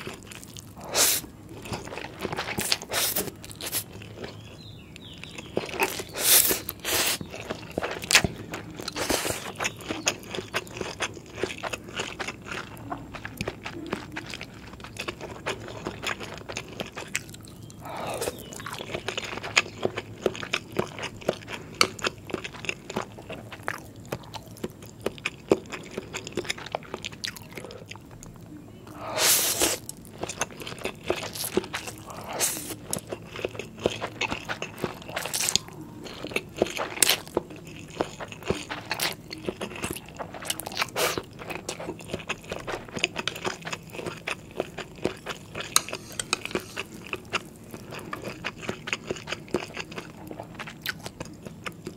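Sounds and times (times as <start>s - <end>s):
close-miked chewing: 0.0s - 51.9s
slurping noodles: 29.0s - 29.9s.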